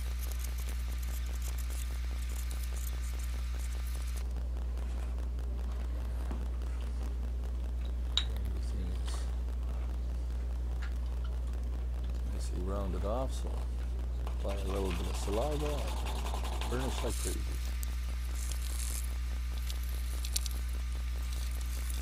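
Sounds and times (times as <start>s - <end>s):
leather beveler scraping: 0.0s - 4.2s, 14.5s - 22.0s
low hum: 0.0s - 22.0s.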